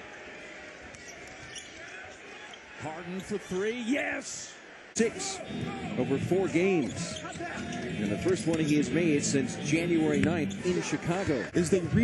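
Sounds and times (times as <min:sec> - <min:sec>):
arena crowd murmur: 0:00.0 - 0:12.0
commentator speaking: 0:02.8 - 0:12.0.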